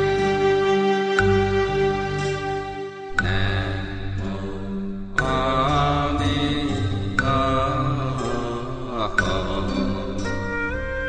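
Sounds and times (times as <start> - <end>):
instrumental accompaniment: 0.0 - 11.0
person singing devotional chant: 3.2 - 10.5.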